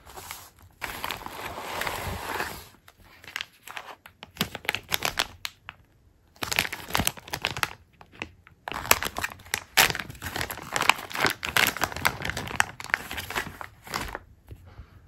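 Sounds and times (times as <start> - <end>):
plastic zip bag crinkling: 0.1 - 5.5, 6.4 - 14.2.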